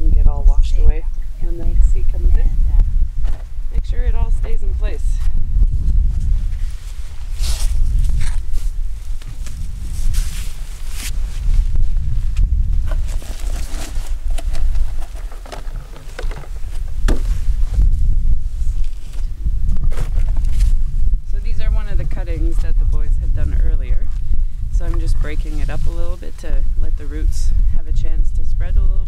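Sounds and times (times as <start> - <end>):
wind buffeting microphone: 0.0 - 29.0
boots and hands rustling in sand: 5.2 - 20.8.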